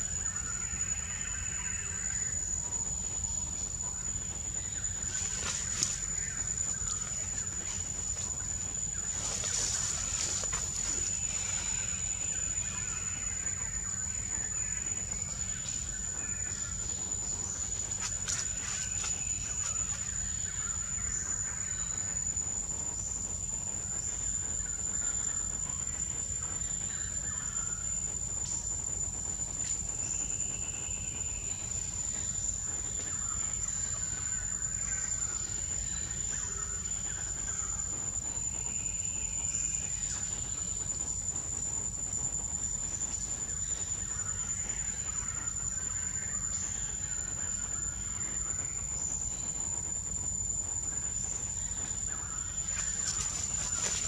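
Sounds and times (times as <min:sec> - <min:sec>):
insect trilling: 0:00.0 - 0:54.0.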